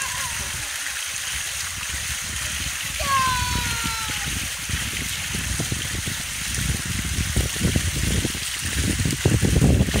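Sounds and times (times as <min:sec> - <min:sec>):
fountain water splashing into pool: 0:00.0 - 0:10.0.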